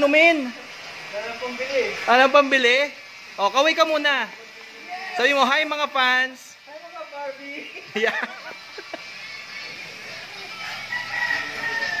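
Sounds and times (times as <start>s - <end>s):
rooster crowing: 10.4s - 12.0s.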